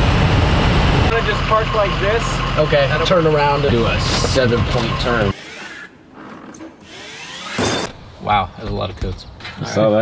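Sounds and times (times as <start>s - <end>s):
electric cart motor whining: 1.2s - 7.9s.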